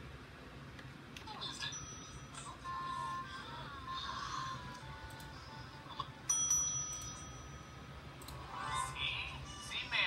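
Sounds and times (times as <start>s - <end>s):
service bell ringing: 1.6s - 2.6s, 6.3s - 8.0s.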